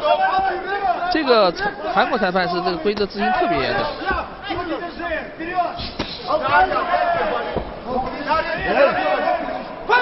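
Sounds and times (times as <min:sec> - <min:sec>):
excited voices: 0:00.0 - 0:10.0.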